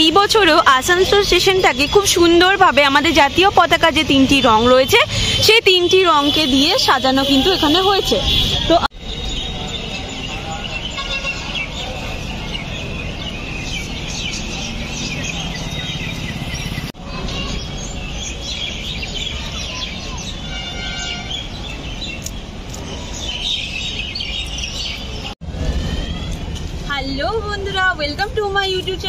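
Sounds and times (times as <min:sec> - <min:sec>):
birds chirping: 0:00.0 - 0:25.4.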